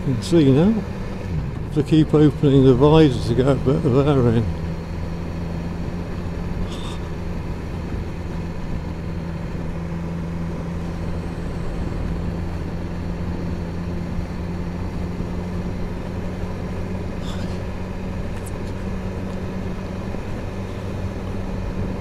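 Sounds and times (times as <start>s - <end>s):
motorcycle engine humming: 0.0s - 22.0s
road and wind noise: 0.0s - 22.0s.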